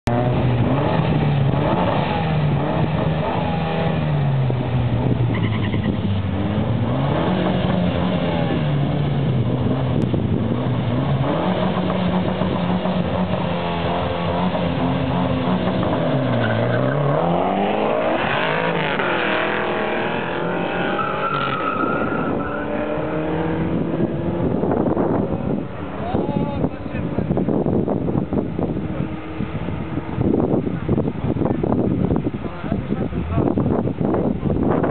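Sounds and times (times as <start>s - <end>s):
car engines revving: 0.0s - 34.9s
cars accelerating through gear changes: 0.1s - 26.0s.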